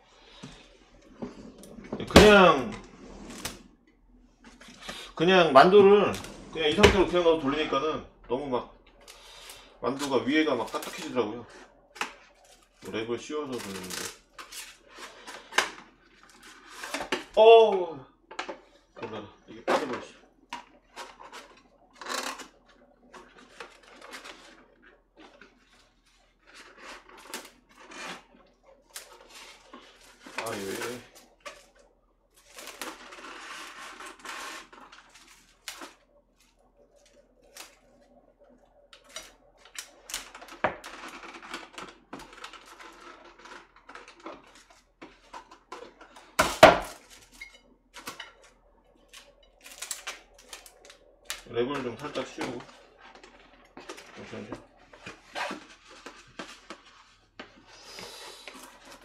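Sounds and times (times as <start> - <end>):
cling wrap crinkling and rustling: 0.1 - 17.8, 18.4 - 59.0.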